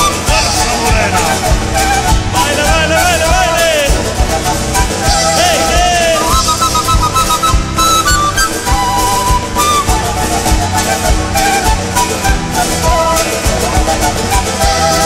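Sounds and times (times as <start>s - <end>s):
flute-like wind melody: 0.0s - 15.0s
folk band playing: 0.0s - 15.0s.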